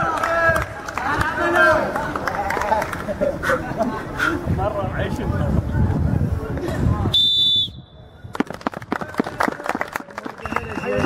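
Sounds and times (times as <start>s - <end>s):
people clapping hands: 0.0s - 3.2s, 8.3s - 11.0s.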